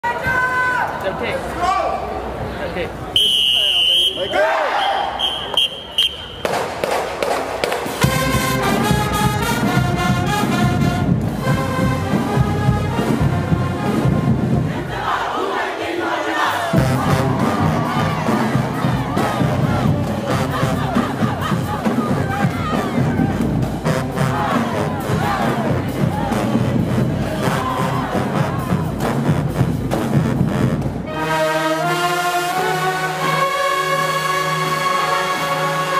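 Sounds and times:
crowd cheering: 0:03.1 - 0:09.7, 0:14.6 - 0:29.3
drum cadence: 0:06.3 - 0:14.8.

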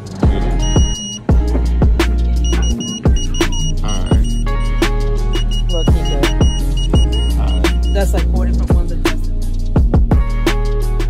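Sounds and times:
hip hop music with heavy bass: 0:00.0 - 0:11.0
diamond tester beeping: 0:00.6 - 0:01.3, 0:02.4 - 0:08.0.

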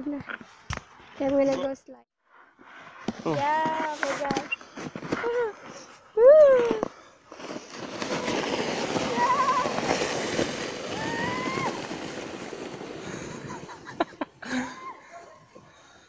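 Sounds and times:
plastic shovel scraping over snow: 0:02.8 - 0:06.0, 0:07.3 - 0:14.0.

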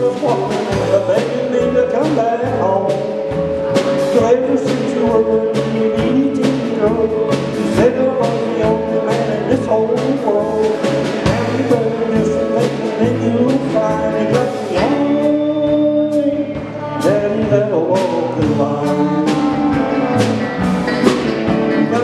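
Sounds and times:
electric guitars: 0:00.0 - 0:22.0
steady drum beat: 0:00.0 - 0:22.0
walking bass line: 0:00.0 - 0:22.0.

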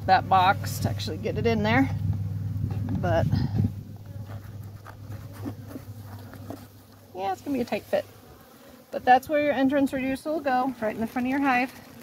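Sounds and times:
honeybees buzzing: 0:00.0 - 0:12.0.

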